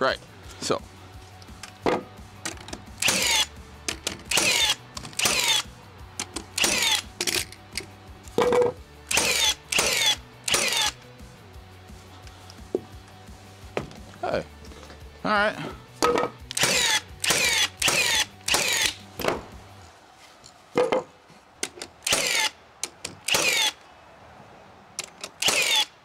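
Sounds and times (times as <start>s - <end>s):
power tool bursts: 3.0s - 3.5s, 4.3s - 5.7s, 6.6s - 7.0s, 9.1s - 11.0s, 16.6s - 19.0s, 22.0s - 22.5s, 23.2s - 23.8s, 25.4s - 25.9s.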